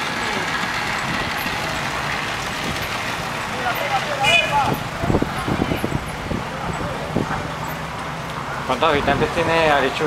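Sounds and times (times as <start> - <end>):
distant voices: 0.0 - 10.0
outdoor background noise: 0.0 - 10.0.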